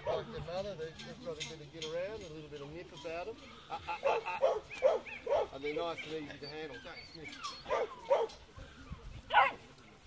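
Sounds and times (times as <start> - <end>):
puppy barking: 0.0 - 0.3, 4.0 - 5.6, 7.5 - 8.4, 9.3 - 9.6.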